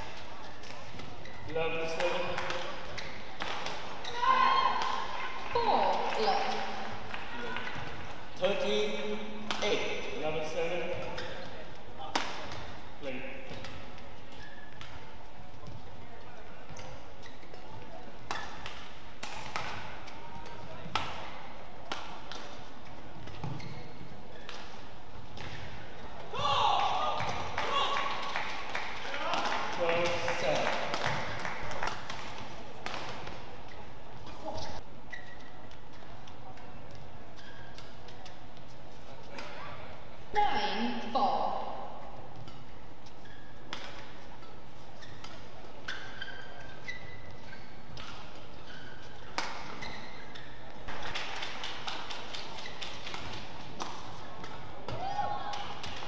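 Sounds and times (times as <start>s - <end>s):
rackets striking shuttlecock: 1.8s - 5.2s, 9.3s - 10.0s, 10.8s - 15.7s, 16.7s - 26.0s, 29.3s - 33.5s, 42.4s - 44.6s, 47.8s - 48.5s, 49.2s - 56.0s.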